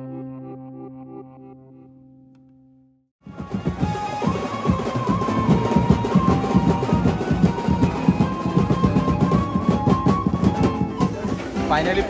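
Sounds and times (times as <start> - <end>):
keyboard melody: 0.0 - 2.5, 3.2 - 12.0
drum kit beat: 3.2 - 12.0.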